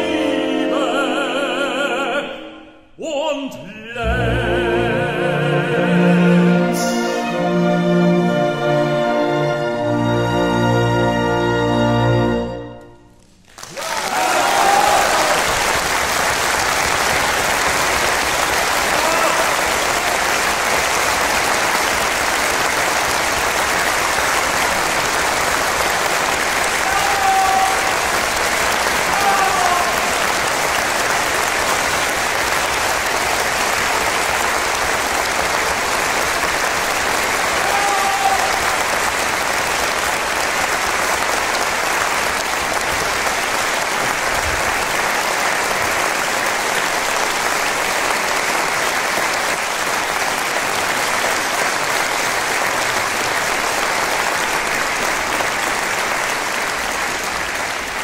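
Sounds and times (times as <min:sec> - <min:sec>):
audience applauding: 0:13.2 - 0:58.0
audience calls: 0:13.4 - 0:58.0.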